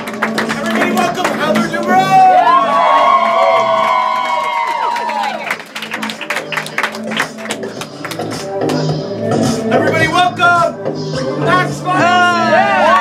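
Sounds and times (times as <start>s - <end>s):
scattered clapping: 0.0s - 2.1s, 3.8s - 9.0s
background music with bass notes: 0.0s - 13.0s
audience cheering and whooping: 1.8s - 5.6s, 12.4s - 13.0s.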